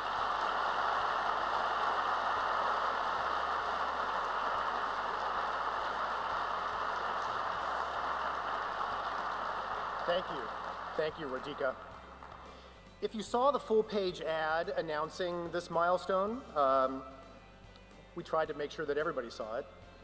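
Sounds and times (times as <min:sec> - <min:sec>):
audience applauding: 0:00.0 - 0:12.6.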